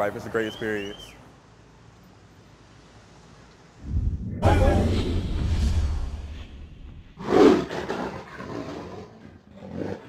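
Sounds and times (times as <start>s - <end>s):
tiger roaring: 7.2s - 10.0s.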